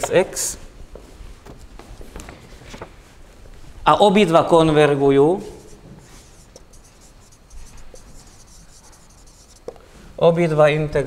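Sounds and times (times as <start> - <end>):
marker writing on a whiteboard: 5.4 - 9.8
light marker taps: 6.5 - 6.9, 9.4 - 9.8.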